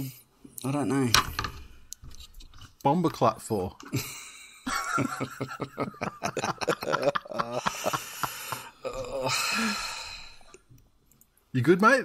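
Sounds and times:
person laughing heartily: 3.9s - 9.7s
wheezing breaths: 7.6s - 10.7s.

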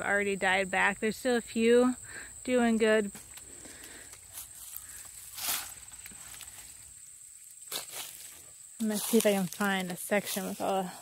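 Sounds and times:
high-pitched insect trill: 0.0s - 11.0s
footsteps through dry leaves: 4.1s - 11.0s.

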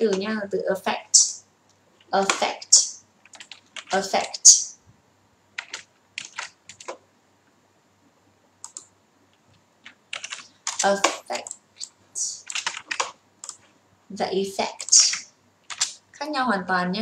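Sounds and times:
woman speaking: 0.0s - 1.5s, 2.1s - 3.0s, 3.9s - 4.8s, 10.8s - 11.5s, 12.2s - 12.5s, 14.1s - 15.3s, 16.2s - 17.0s
keyboard keystrokes and clicks: 3.2s - 4.0s, 5.6s - 7.0s, 8.6s - 13.7s, 14.8s - 16.0s.

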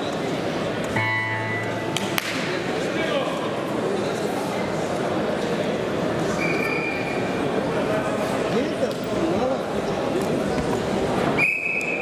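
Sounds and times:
crowd chatter in a hall: 0.0s - 12.0s.

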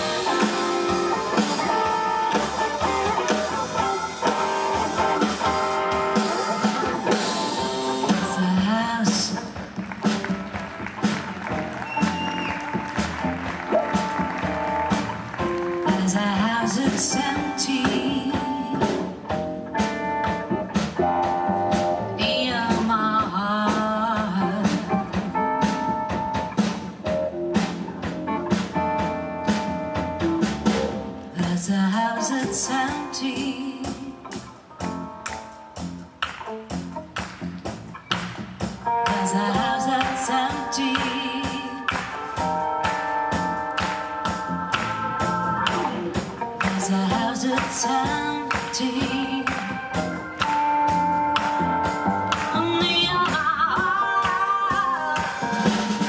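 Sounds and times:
keyboard: 0.0s - 37.4s
drum kit: 0.0s - 56.0s
electric guitar: 0.0s - 56.0s
upright bass: 0.0s - 56.0s
woman singing: 7.9s - 9.6s, 15.8s - 19.2s, 22.2s - 25.3s, 31.3s - 34.4s, 39.0s - 50.6s, 52.3s - 56.0s.

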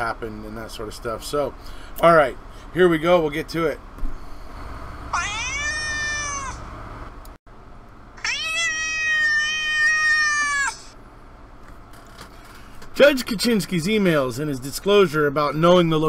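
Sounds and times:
cat meowing: 5.1s - 6.6s, 8.2s - 11.0s.

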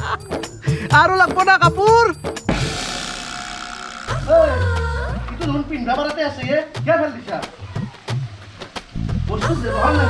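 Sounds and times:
ringing crash: 2.5s - 6.0s.

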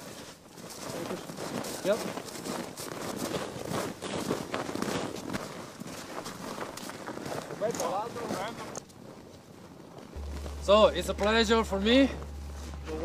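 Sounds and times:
boot footsteps on packed snow: 0.0s - 13.0s.

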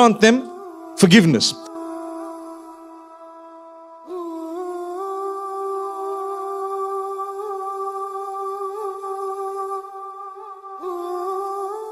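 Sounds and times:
wordless humming voice: 0.0s - 2.6s.

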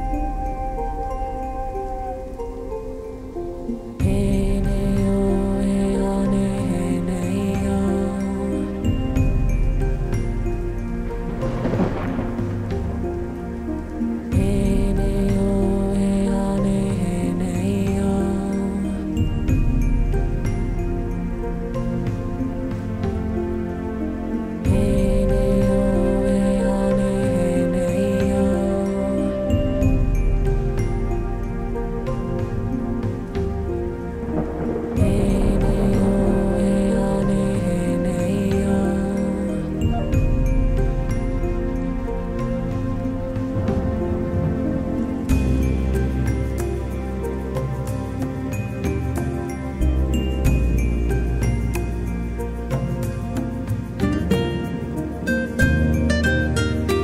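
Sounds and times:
ambient synth music: 0.0s - 57.0s
thunder and rain effect: 0.0s - 57.0s.

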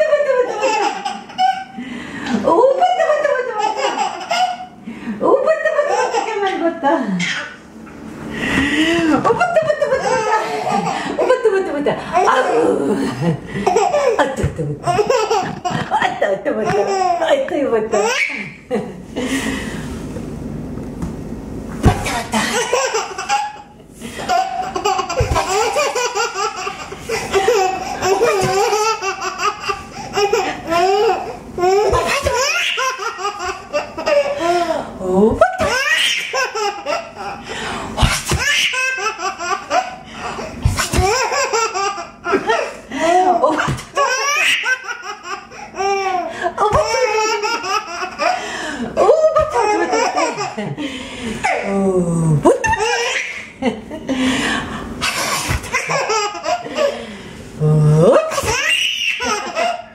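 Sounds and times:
baby laughing: 0.0s - 1.8s, 2.8s - 4.8s, 5.5s - 7.6s, 9.3s - 11.6s, 13.6s - 18.6s, 22.0s - 34.8s, 35.5s - 37.4s, 38.0s - 42.8s, 43.4s - 50.8s, 52.5s - 53.6s, 55.0s - 57.1s, 58.2s - 59.9s.

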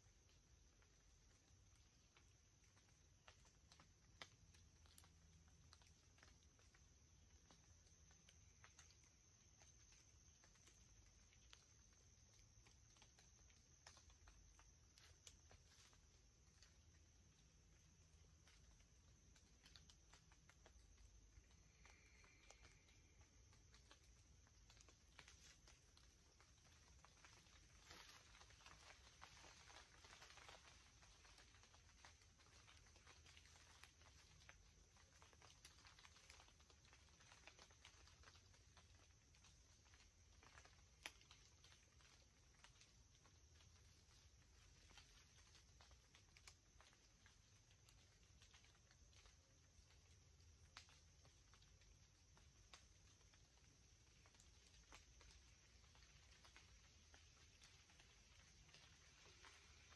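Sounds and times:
faint high hiss: 0.0s - 59.9s
small ticks and rustles: 0.0s - 59.9s.

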